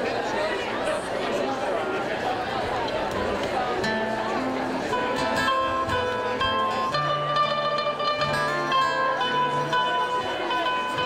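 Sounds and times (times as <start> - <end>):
audience chatter: 0.0 - 11.0
acoustic guitar and mandolin: 2.6 - 11.0.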